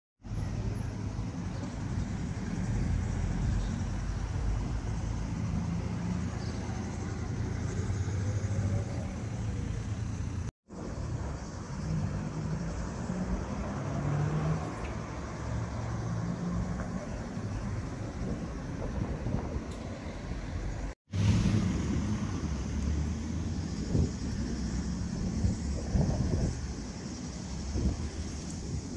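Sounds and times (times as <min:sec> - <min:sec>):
road traffic rumble: 0:00.2 - 0:28.9.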